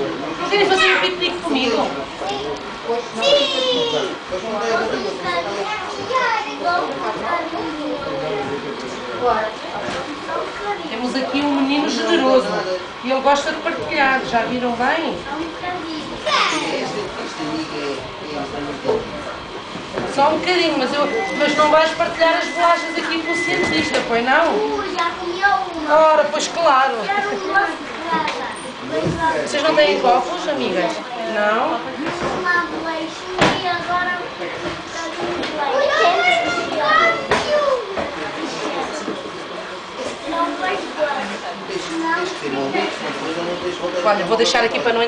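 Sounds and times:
children chattering: 0.0 - 45.0.

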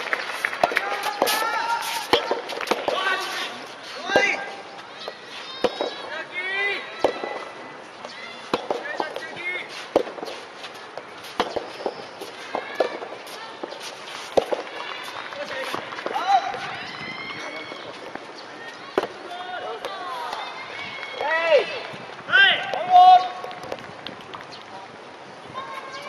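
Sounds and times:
rackets hitting tennis ball: 0.0 - 24.7
people shouting: 0.6 - 9.6, 14.4 - 18.0.

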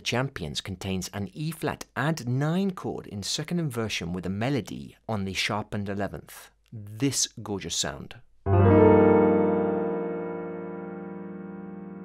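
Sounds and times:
piano chord ringing: 8.5 - 12.0.

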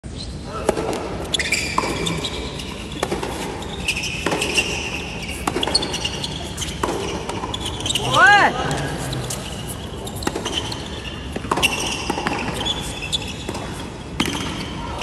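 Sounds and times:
racket hitting tennis ball: 0.7 - 7.7, 9.4 - 14.6
shoes squeaking on court: 1.2 - 15.0.

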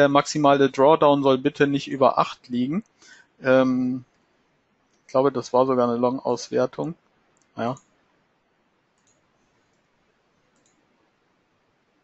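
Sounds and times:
faint computer mouse clicks: 9.0 - 10.9.

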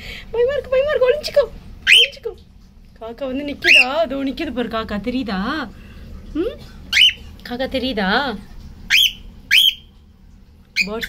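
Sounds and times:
cockatiel talking: 1.8 - 2.3, 3.6 - 4.1, 6.9 - 7.2, 8.9 - 9.8, 10.8 - 11.0
cockatiel chirp calls: 1.9 - 2.1, 3.6 - 3.9, 6.9 - 7.2, 8.9 - 9.9.

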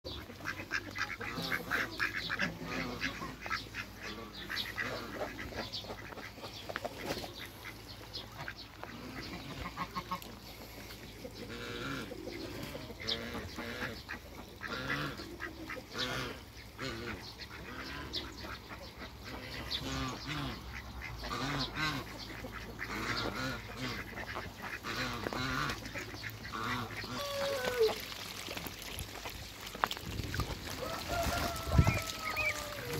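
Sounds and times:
ducks quacking: 0.1 - 32.9.

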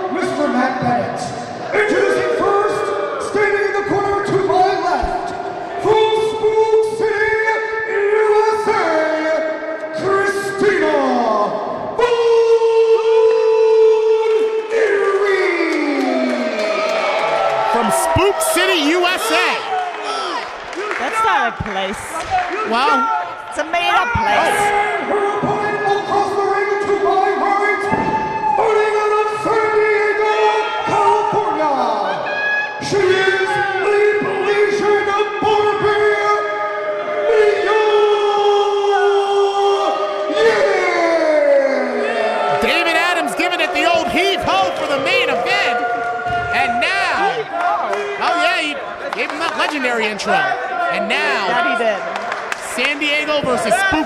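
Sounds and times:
announcer's voice over loudspeaker: 17.8 - 19.7, 22.7 - 24.8, 42.6 - 45.8, 48.2 - 52.0.

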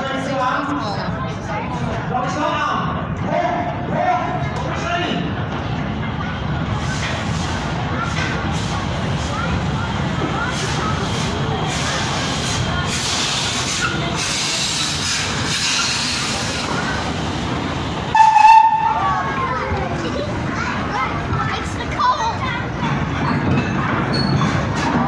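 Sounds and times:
onlookers talking: 0.0 - 25.0
train wheels rumbling on rails: 0.9 - 25.0.

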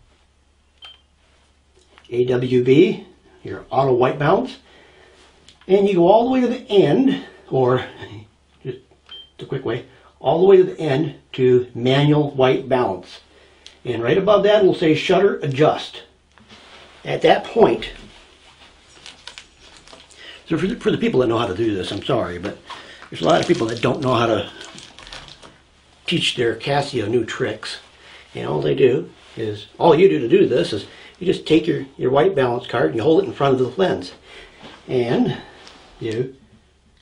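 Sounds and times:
low room hum: 0.0 - 37.0
camera button beep: 0.8 - 1.1.

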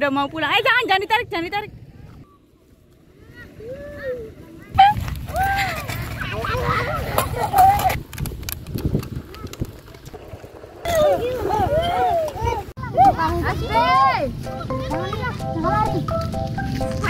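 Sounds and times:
children calling and shouting: 1.8 - 8.0, 10.8 - 17.0
wind rumble on microphone: 3.5 - 13.5.

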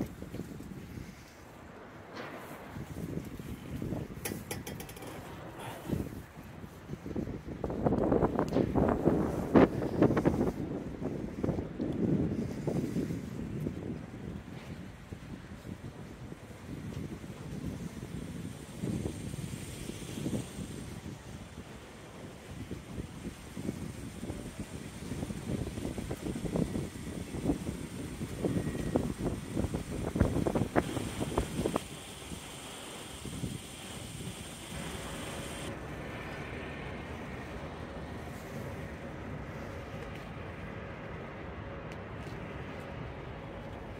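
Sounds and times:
wind buffeting microphone: 0.0 - 41.8.

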